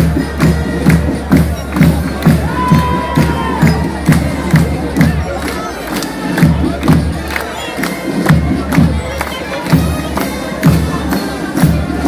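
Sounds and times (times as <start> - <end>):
band music: 0.0 - 12.0
drum beating steadily: 0.0 - 12.0
crowd cheering and shouting: 0.8 - 12.0.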